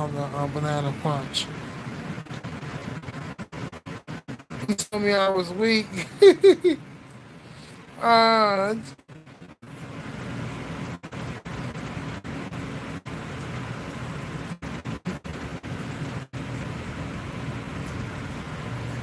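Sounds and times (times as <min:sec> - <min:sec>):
steady rushing noise: 0:00.0 - 0:19.0.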